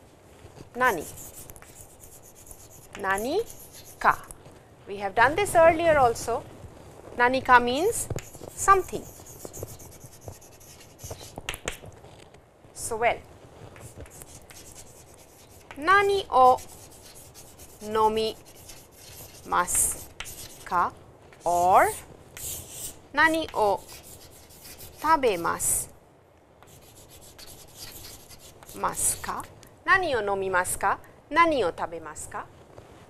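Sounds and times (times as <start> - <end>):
chalk tapping and scratching: 0.8 - 4.3, 7.8 - 12.0, 13.7 - 25.8, 26.6 - 29.4.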